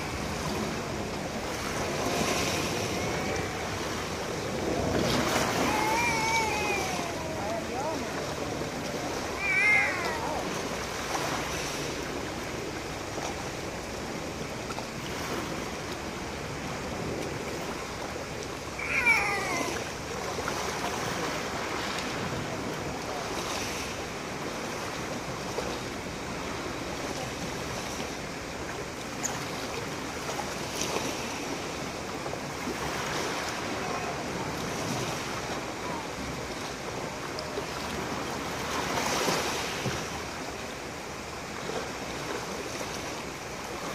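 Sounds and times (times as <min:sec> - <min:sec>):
small waves on pebble beach: 0:00.0 - 0:43.9.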